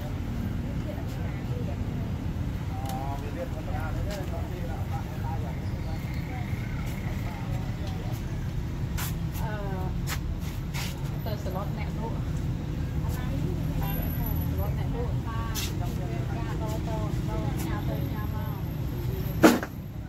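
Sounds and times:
voices talking: 0:00.0 - 0:10.1, 0:10.7 - 0:20.0.

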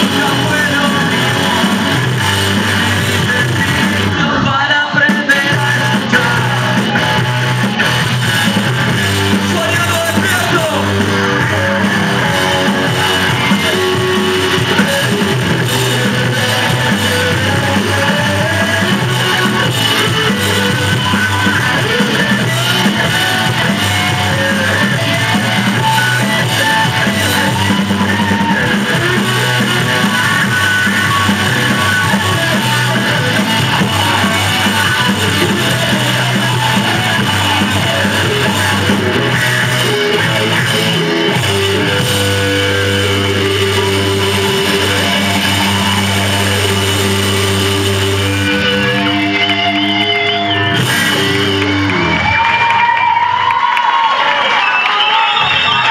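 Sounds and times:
rock band playing: 0:00.0 - 0:55.9.

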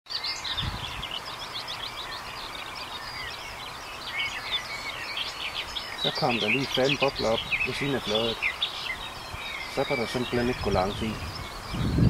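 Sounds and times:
outdoor hiss: 0:00.1 - 0:12.0
songbirds chirping and trilling: 0:00.1 - 0:12.0.

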